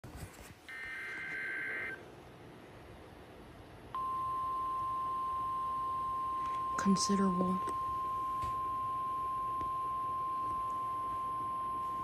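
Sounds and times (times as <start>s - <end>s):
steady warning tone: 0.7s - 2.0s, 4.0s - 12.0s.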